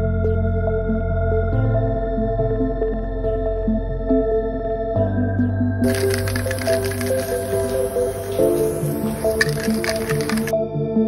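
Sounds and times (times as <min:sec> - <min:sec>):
background music: 0:00.0 - 0:11.0
aerosol spray can hissing: 0:05.8 - 0:10.5.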